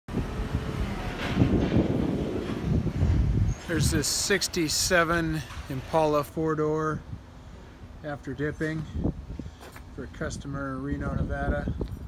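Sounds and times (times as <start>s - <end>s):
wind buffeting microphone: 0.1s - 7.4s, 8.4s - 12.0s
traffic rumble: 0.1s - 12.0s.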